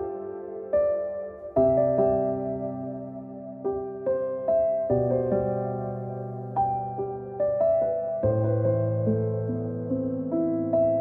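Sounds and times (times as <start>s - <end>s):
gentle piano music: 0.0s - 11.0s.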